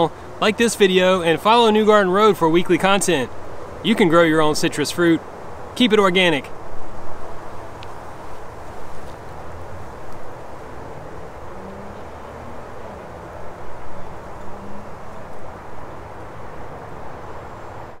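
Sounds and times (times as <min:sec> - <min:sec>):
low outdoor rumble: 0:00.0 - 0:18.0
faint engine hum: 0:06.4 - 0:18.0.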